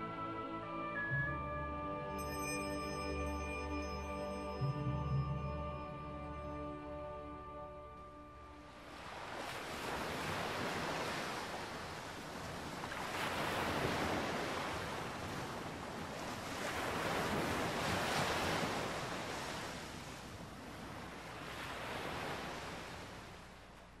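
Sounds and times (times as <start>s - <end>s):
ocean waves breaking: 2.2s - 24.0s.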